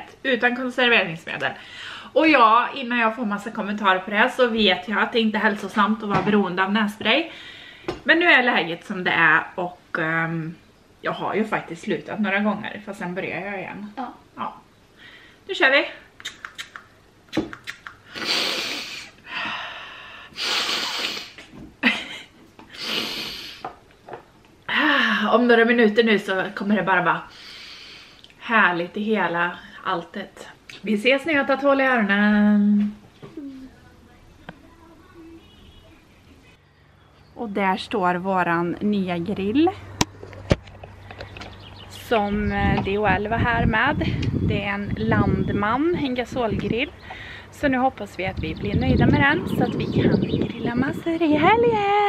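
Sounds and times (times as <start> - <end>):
woman sniffing through nose: 18.1 - 19.2, 20.3 - 21.4, 22.7 - 23.7, 27.3 - 28.2
faint bird chirps: 33.1 - 37.5.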